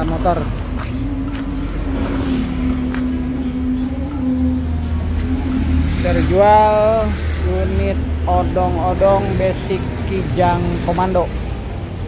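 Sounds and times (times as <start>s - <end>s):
vehicle engine idling: 0.0s - 12.0s.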